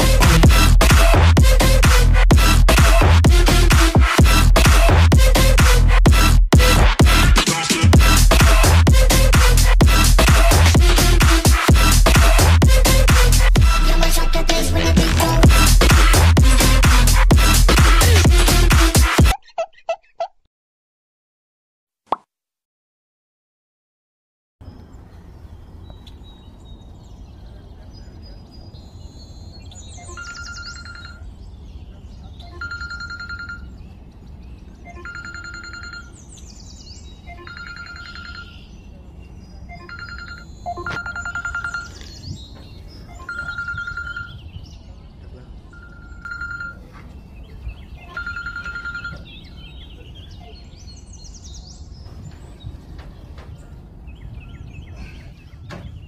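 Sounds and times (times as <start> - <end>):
phone alarm beeping: 30.0 - 31.2, 32.5 - 33.7, 34.9 - 36.2, 37.3 - 38.6, 39.7 - 42.1, 43.1 - 44.4, 45.8 - 46.8, 48.1 - 49.3.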